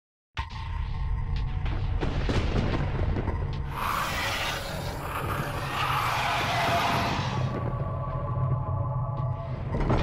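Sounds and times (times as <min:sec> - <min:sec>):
dramatic music with low beat: 0:00.4 - 0:10.0.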